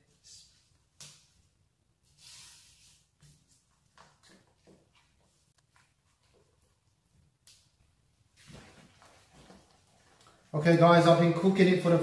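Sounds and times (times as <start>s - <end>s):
spatula scraping strokes: 2.0s - 3.4s.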